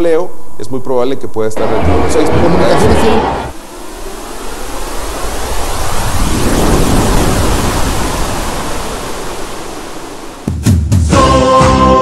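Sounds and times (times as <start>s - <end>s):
sharp hit: 1.6s - 4.6s
whoosh transition: 1.6s - 8.7s.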